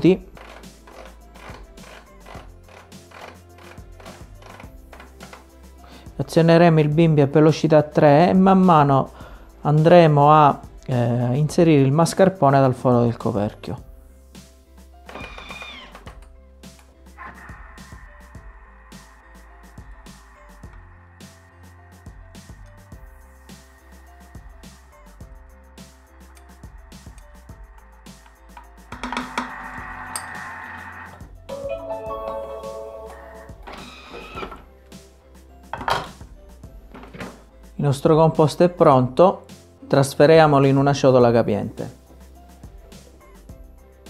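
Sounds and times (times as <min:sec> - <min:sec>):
background music: 0:00.0 - 0:44.0
kitchen machine whirring: 0:28.9 - 0:31.2.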